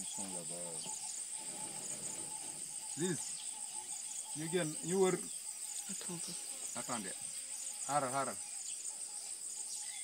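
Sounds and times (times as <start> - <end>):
high-pitched insect chorus: 0.0 - 10.0.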